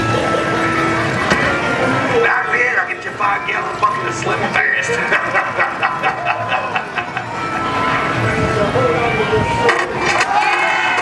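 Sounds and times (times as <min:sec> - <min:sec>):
voices talking: 0:00.0 - 0:10.5
background music: 0:00.0 - 0:11.0.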